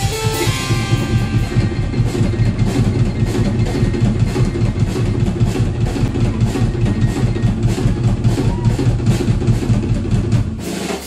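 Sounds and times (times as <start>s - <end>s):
electric guitar: 0.0s - 5.0s
bass line: 0.0s - 10.5s
drum kit beat: 0.0s - 11.0s
live band playing: 0.0s - 11.0s.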